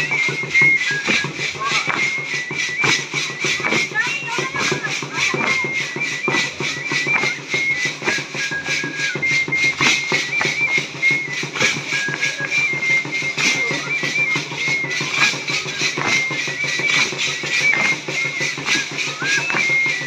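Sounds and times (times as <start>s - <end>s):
drum steady quick beat: 0.0s - 20.0s.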